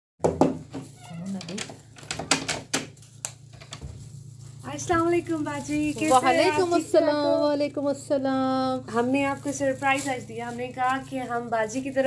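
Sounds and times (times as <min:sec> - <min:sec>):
low steady hum: 0:00.4 - 0:12.0.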